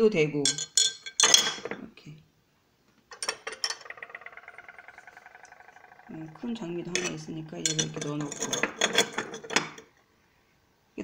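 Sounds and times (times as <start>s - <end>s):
ceramic ornaments clinking: 0.4s - 1.9s, 3.1s - 9.8s.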